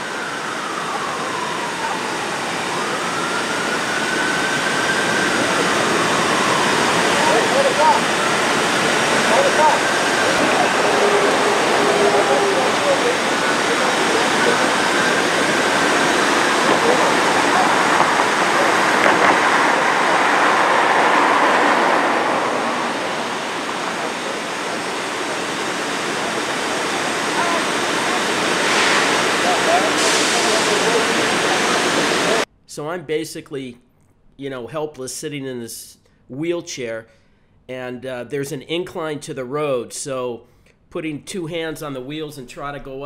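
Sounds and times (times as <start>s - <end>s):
loud rushing noise: 0.0s - 32.5s.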